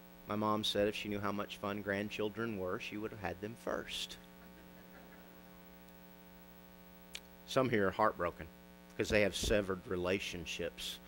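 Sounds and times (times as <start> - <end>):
electrical mains hum: 0.0 - 11.0
person speaking: 0.3 - 4.3, 7.4 - 11.0.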